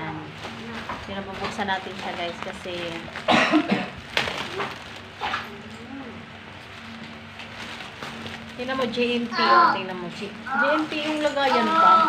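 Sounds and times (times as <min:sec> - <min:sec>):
plastic crinkling: 0:00.0 - 0:12.0
plastic pouch tearing: 0:03.9 - 0:05.6, 0:07.2 - 0:09.4.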